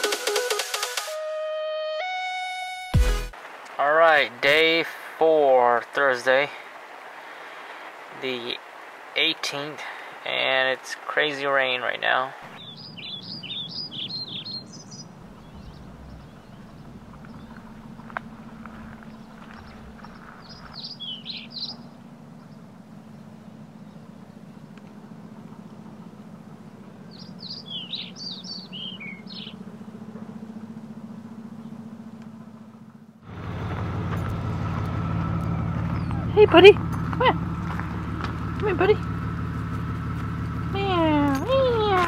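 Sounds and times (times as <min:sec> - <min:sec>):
small songbirds chirping: 0:06.3 - 0:33.2, 0:34.2 - 0:42.0
engine-like hum: 0:12.3 - 0:42.0
faint low hum: 0:12.6 - 0:33.2.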